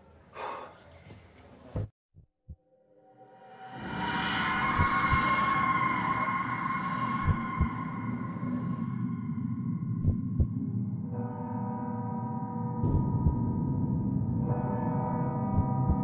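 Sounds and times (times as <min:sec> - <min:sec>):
eerie drone: 0:02.6 - 0:16.0
heartbeat thumps: 0:04.8 - 0:05.3, 0:07.2 - 0:07.8, 0:10.0 - 0:10.6, 0:12.8 - 0:13.5, 0:15.5 - 0:16.0.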